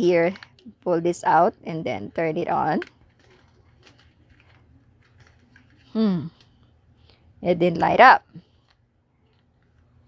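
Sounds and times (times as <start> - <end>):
plastic mask clicks and rustles: 2.6 - 6.7, 8.5 - 10.0.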